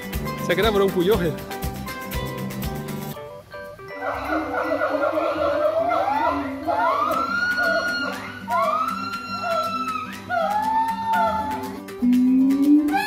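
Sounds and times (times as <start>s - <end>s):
gibbons whooping calls: 4.0s - 13.0s.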